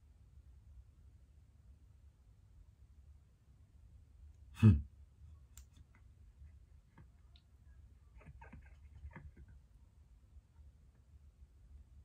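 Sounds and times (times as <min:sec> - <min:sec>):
faint clicks: 0:06.8 - 0:09.6.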